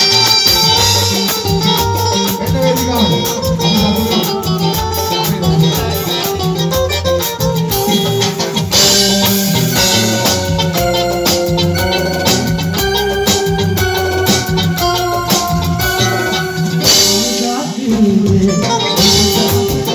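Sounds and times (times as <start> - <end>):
live band playing upbeat music: 0.0 - 19.9.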